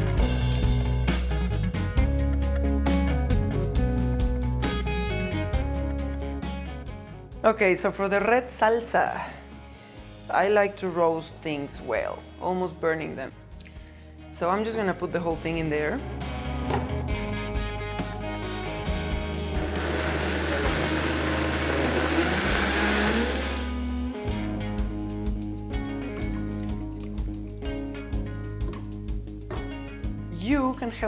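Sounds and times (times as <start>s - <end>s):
background music: 0.0s - 31.0s
blender running: 19.4s - 23.8s.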